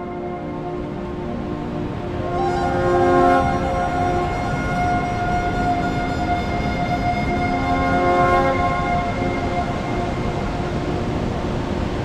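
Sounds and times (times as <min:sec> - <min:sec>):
sustained chords music: 0:00.0 - 0:12.0.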